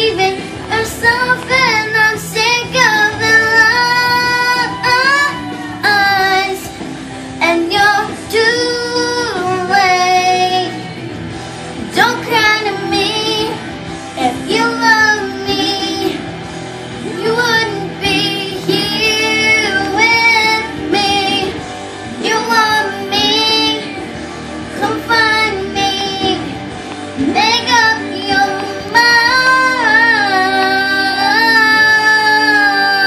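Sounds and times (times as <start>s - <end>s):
girl singing with vibrato: 0.0s - 11.0s, 11.9s - 16.4s, 17.0s - 24.1s, 24.7s - 33.0s.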